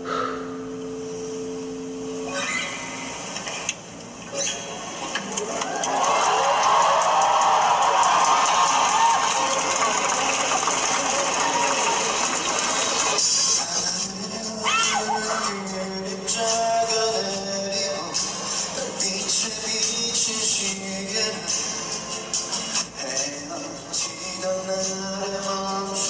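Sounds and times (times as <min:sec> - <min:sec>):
acoustic guitar: 0:09.4 - 0:26.0
man singing a ballad: 0:13.2 - 0:22.1, 0:22.8 - 0:26.0.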